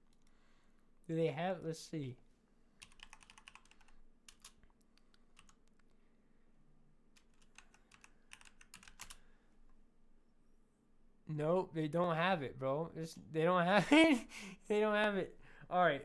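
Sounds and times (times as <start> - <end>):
faint keyboard typing: 0.0 - 0.4, 2.8 - 6.0, 7.1 - 9.8.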